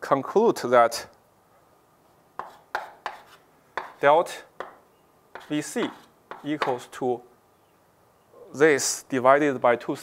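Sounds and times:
chalk tapping on chalkboard: 0:02.4 - 0:06.9.

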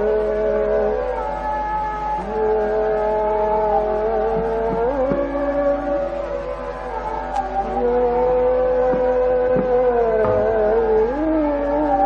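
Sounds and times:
steady drone: 0:10.0 - 0:12.0.

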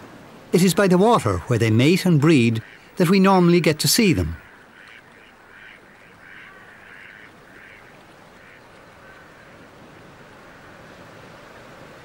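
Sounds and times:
water birds nasal calls: 0:00.5 - 0:12.0.

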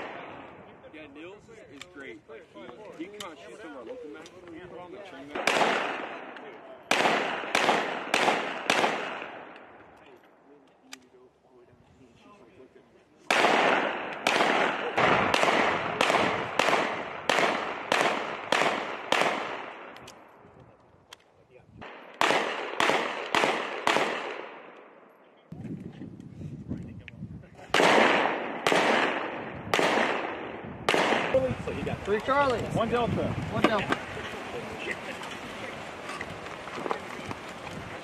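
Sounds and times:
pistol shots echoing: 0:05.3 - 0:09.8, 0:13.3 - 0:20.4, 0:21.8 - 0:25.1, 0:27.7 - 0:31.5.

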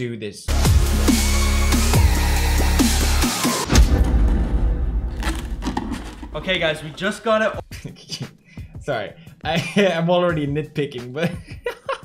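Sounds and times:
cardboard box tearing open: 0:05.2 - 0:06.4.

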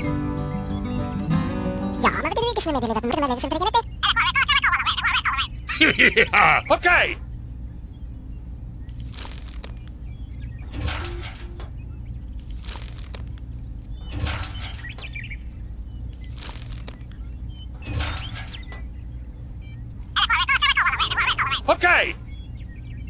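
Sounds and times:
steady low hum: 0:05.5 - 0:20.2
beans rattling in basket: 0:08.9 - 0:09.9, 0:12.4 - 0:13.5, 0:16.2 - 0:17.2.

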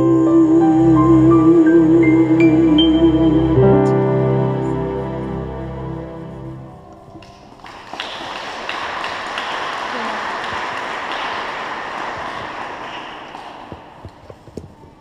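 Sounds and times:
audience applauding: 0:07.1 - 0:14.2.

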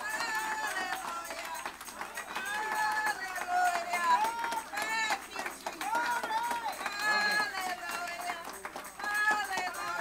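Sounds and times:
congregation calling out in praise: 0:00.0 - 0:10.0
hand clapping: 0:00.0 - 0:10.0.

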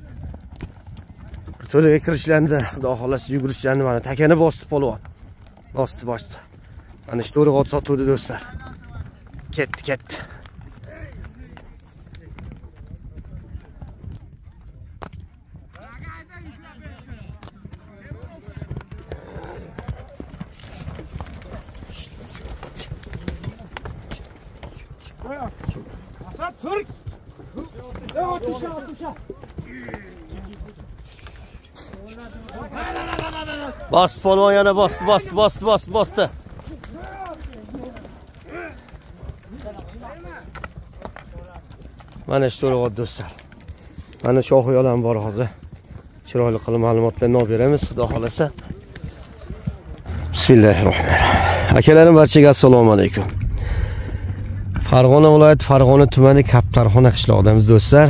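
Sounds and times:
horse galloping on soft earth: 0:00.0 - 0:58.0
men shouting short calls: 0:32.3 - 0:38.8
faint voices: 0:47.9 - 0:57.5
low rumble: 0:50.0 - 0:51.8, 0:53.0 - 0:58.0.

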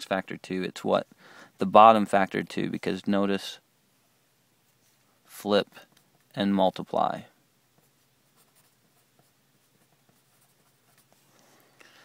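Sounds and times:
pen scratching on paper: 0:07.8 - 0:11.3.

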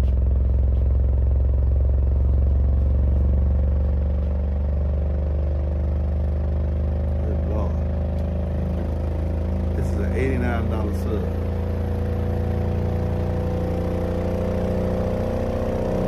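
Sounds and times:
subwoofer deep test tone drone: 0:00.0 - 0:16.0.

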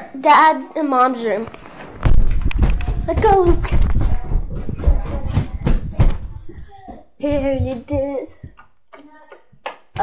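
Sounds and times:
footsteps dull thumps: 0:02.0 - 0:10.0.

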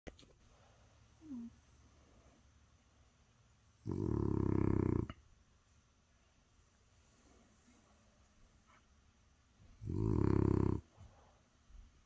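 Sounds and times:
dog snoring: 0:03.8 - 0:05.2, 0:09.8 - 0:10.9.

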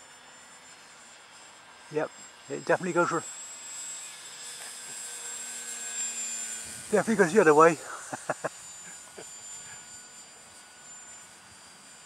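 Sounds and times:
model plane motor whine: 0:00.0 - 0:12.0.

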